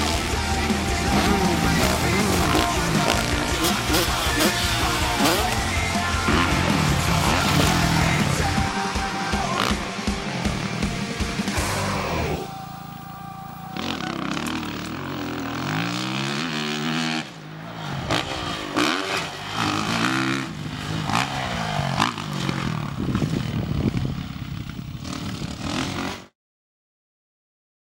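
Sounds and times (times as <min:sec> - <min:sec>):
dirt bike engine revving: 0:00.0 - 0:26.3.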